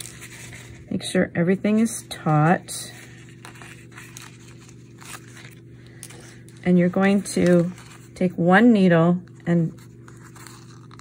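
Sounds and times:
rustling of paper and thread: 0.0s - 8.6s, 9.2s - 11.0s
low steady hum: 0.0s - 11.0s.

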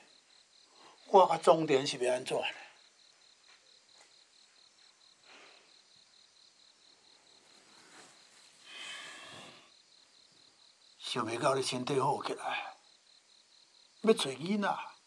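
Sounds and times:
crickets chirping: 0.0s - 15.0s.

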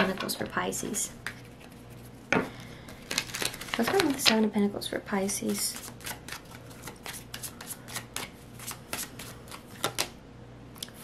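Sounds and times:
cards being shuffled: 2.9s - 4.3s, 5.4s - 10.2s.

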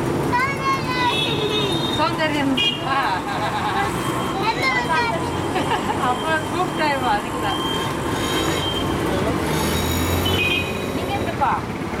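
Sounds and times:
steady traffic: 0.0s - 12.0s.

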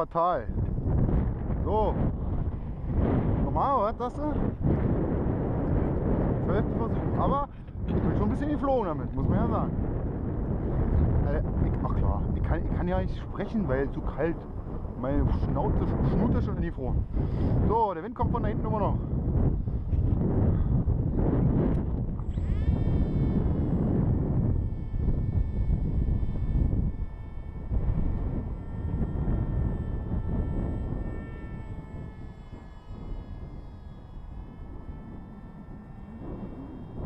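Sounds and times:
electric motor and propeller whine: 0.0s - 37.0s
wind rumble on microphone: 0.0s - 37.0s.

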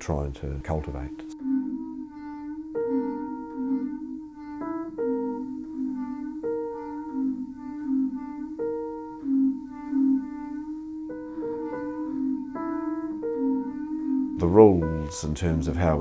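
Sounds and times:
clarinet low wavering notes: 0.0s - 16.0s
short sharp higher notes: 0.8s - 16.0s.

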